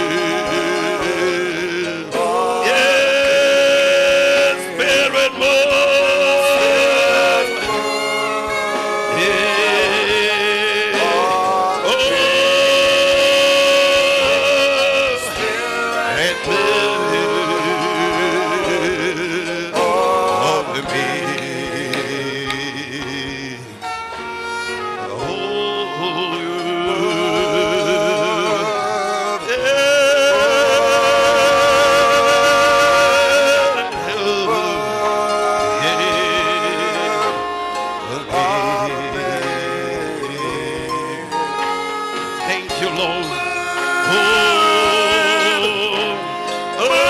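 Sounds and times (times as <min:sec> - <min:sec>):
church worship music with singing: 0:00.0 - 0:47.0.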